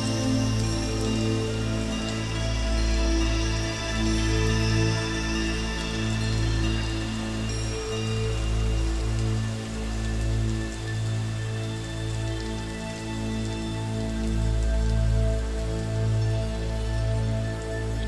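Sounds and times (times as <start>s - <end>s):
rain-like hiss: 0.0s - 18.0s
slow calm ambient music: 0.0s - 18.0s.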